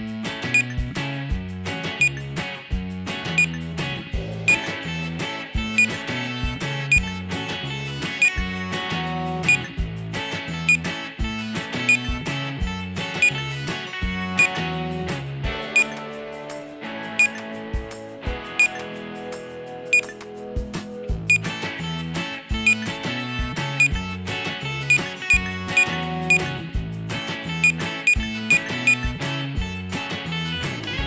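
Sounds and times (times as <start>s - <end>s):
upbeat background music: 0.0s - 31.0s
checkout scanner beeps: 0.5s - 0.8s, 2.0s - 2.3s, 3.4s - 3.6s, 4.5s - 4.8s, 5.7s - 6.0s, 6.9s - 7.2s, 8.2s - 8.5s, 9.5s - 9.7s, 10.6s - 10.9s, 11.8s - 12.2s, 13.2s - 13.4s, 14.4s - 14.6s, 15.7s - 16.0s, 17.2s - 17.5s, 18.6s - 18.8s, 19.9s - 20.2s, 21.3s - 21.5s, 22.6s - 22.9s, 23.8s - 24.0s, 24.8s - 26.5s, 27.6s - 29.1s.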